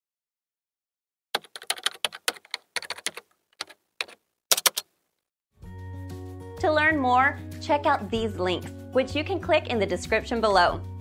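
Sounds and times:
typing on computer keyboard: 1.4s - 4.9s.

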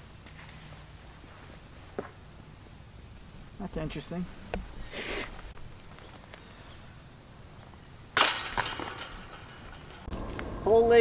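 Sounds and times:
disc rattling metal chains: 8.2s - 10.1s.

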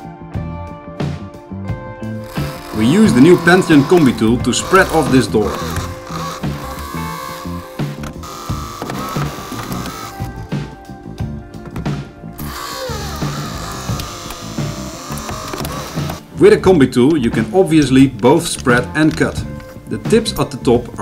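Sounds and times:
background music with beat: 0.0s - 21.0s
hydraulic tool pump whine: 2.2s - 10.4s, 12.4s - 16.3s.

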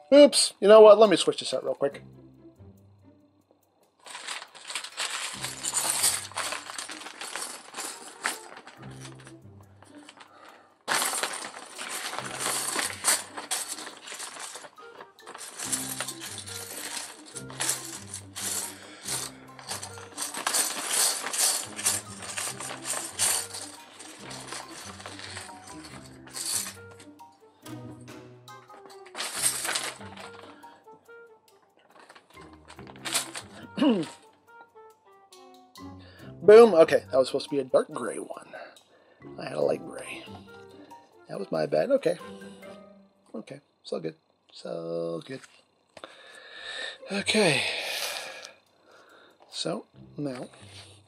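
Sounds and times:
plastic bricks clattering: 4.0s - 27.0s, 28.7s - 30.7s, 31.8s - 34.2s
background music with bass line: 15.4s - 31.2s.

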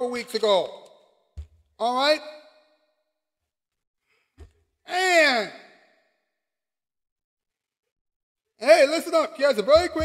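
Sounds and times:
man's drawn-out voice: 4.9s - 5.6s, 8.6s - 10.0s.

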